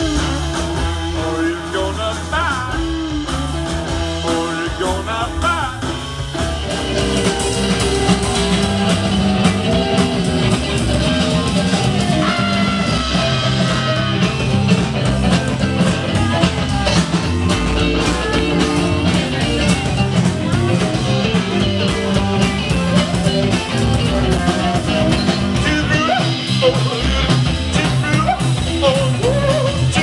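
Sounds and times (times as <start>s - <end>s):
drum kit beat: 0.0s - 30.0s
electric guitars: 0.0s - 30.0s.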